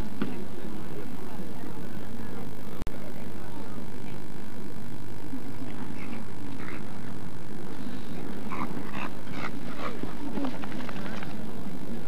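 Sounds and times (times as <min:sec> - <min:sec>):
low background murmur: 0:00.0 - 0:12.0.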